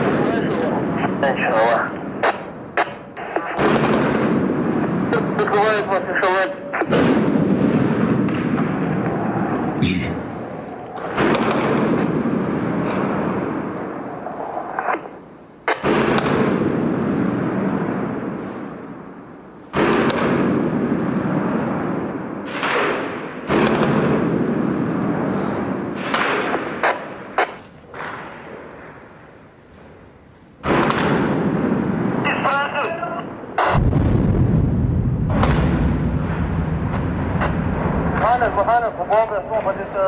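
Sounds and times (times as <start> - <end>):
sharp gunshots: 0.0 - 13.7, 15.6 - 18.6, 19.7 - 28.6, 30.6 - 32.6, 33.6 - 39.3
explosions with rolling echo: 0.0 - 29.9, 30.6 - 40.0.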